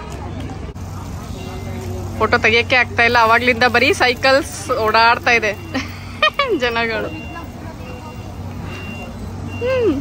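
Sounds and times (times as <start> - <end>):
faint high-pitched beep: 6.6 - 10.0.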